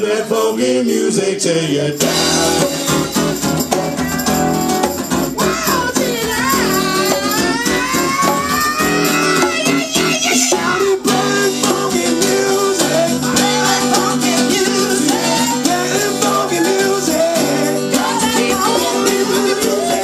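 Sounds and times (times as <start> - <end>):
person singing: 0.0 - 20.0
strummed acoustic guitar: 1.9 - 20.0
drum kit: 2.0 - 20.0.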